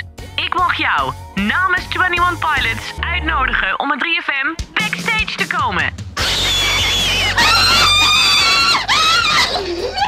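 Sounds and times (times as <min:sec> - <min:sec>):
woman screaming with excitement: 0:06.4 - 0:09.6.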